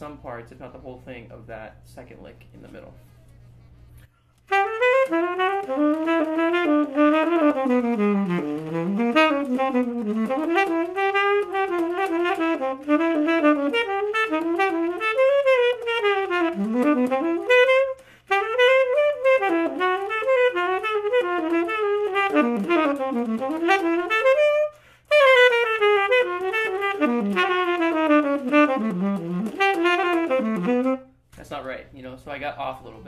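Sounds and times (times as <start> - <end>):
solo saxophone playing jazz blues: 3.6 - 31.2.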